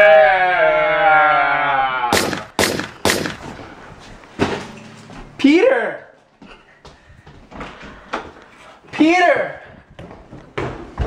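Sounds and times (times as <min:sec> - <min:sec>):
loud sharp bangs: 0:02.1 - 0:03.7.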